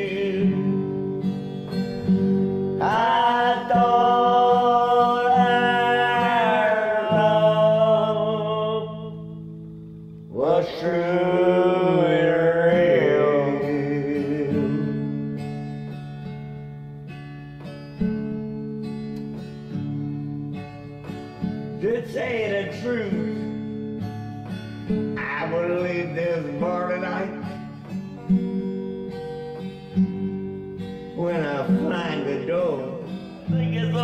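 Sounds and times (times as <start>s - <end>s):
man singing: 0.0s - 1.2s, 2.8s - 9.4s, 10.3s - 15.4s, 21.8s - 23.4s, 25.2s - 27.6s, 31.2s - 34.0s
acoustic guitar strumming: 0.0s - 34.0s.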